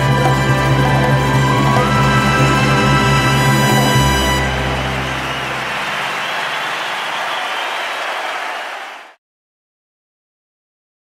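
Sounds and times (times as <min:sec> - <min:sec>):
live band sustained chord: 0:00.0 - 0:07.3
audience applauding: 0:01.5 - 0:09.2.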